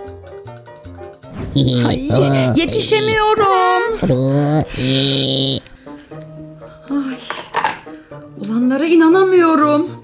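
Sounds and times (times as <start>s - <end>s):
background music with plucked notes: 0.0s - 10.0s.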